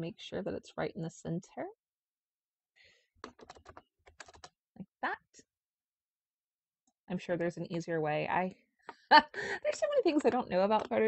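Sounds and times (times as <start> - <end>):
typing on computer keyboard: 3.2 - 4.6.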